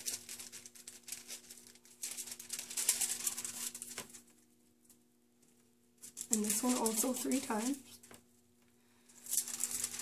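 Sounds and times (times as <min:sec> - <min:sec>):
faint steady hum: 0:00.0 - 0:10.0
wax paper rustling and crinkling: 0:00.0 - 0:10.0.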